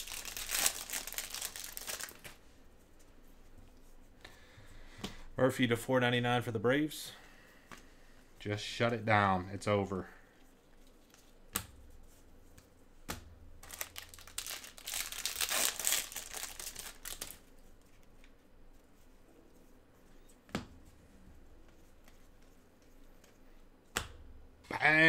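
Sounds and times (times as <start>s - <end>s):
crinkly rustle: 0.0s - 2.4s, 13.6s - 18.2s.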